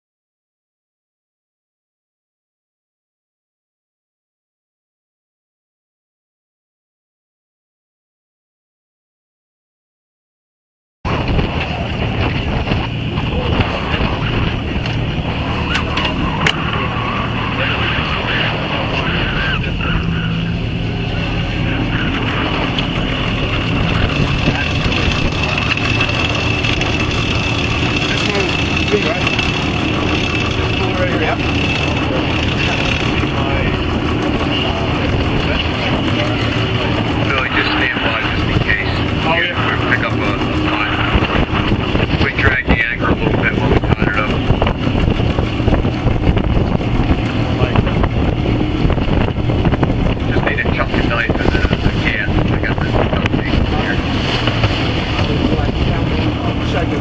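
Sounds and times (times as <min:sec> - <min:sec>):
anchor winch hauling line: 0:11.1 - 0:57.0
boat engine running: 0:11.1 - 0:57.0
wind rumble on microphone: 0:11.1 - 0:57.0.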